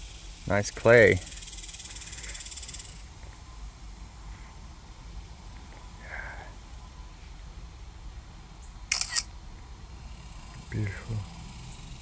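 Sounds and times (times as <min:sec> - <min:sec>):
insect chirring: 0:00.0 - 0:03.2, 0:10.0 - 0:12.0.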